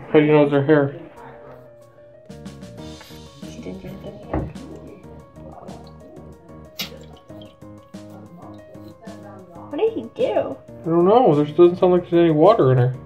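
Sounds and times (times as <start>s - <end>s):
background music with steady beat: 0.0s - 13.0s
water drips: 3.2s - 10.3s.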